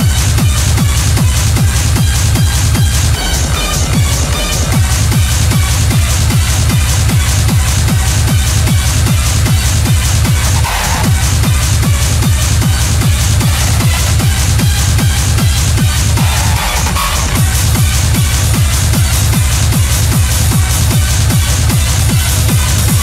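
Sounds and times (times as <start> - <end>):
hard techno kick drum: 0.0 - 23.0
high percussion: 0.0 - 23.0.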